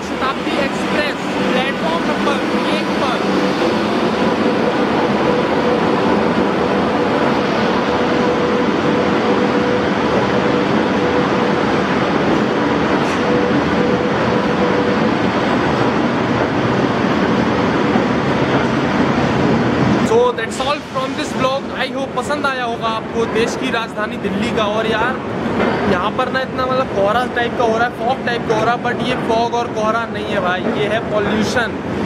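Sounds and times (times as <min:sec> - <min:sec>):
steady tone: 0:00.0 - 0:21.8
train coaches rolling past: 0:00.0 - 0:32.0.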